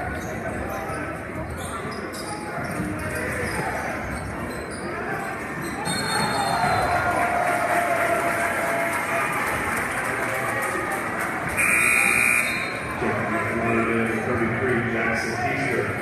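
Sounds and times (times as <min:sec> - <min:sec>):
crowd noise and voices: 0:00.0 - 0:16.0
scoreboard buzzer: 0:11.6 - 0:12.7.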